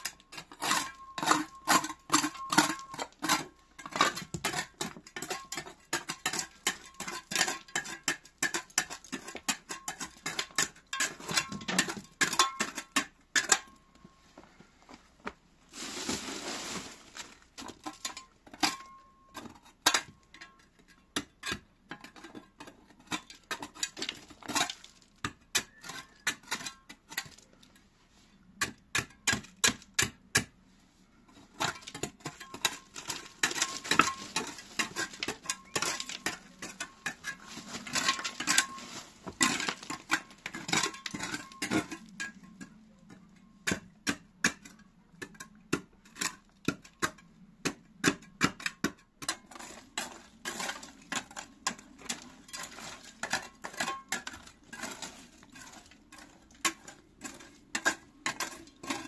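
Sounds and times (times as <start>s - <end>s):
trowel scraping concrete: 0.0s - 13.7s, 21.2s - 27.5s, 31.4s - 43.0s, 48.0s - 59.0s.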